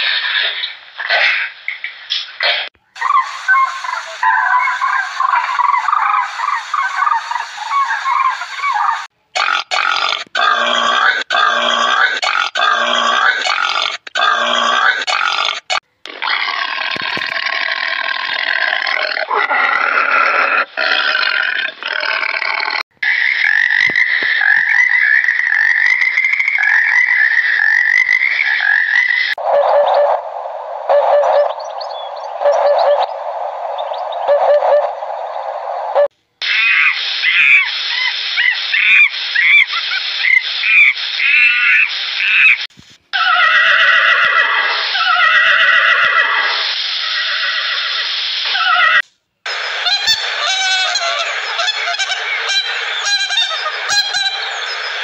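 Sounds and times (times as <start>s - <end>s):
cranes calling: 3.0s - 9.1s, 36.0s - 42.6s
repeated animal call: 3.0s - 17.5s, 38.4s - 55.0s
long high animal call: 43.2s - 49.0s.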